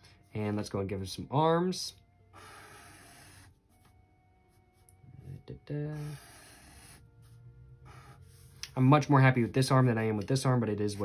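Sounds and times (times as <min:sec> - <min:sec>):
marker rasping on paper: 0:06.0 - 0:09.9.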